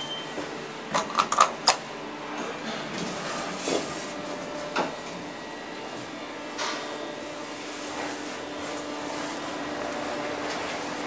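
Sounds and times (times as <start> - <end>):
elevator running hum: 0.0 - 11.0.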